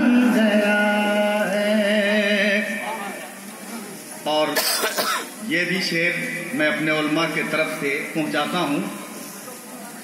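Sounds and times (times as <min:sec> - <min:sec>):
man coughing into microphone: 0:04.6 - 0:05.4.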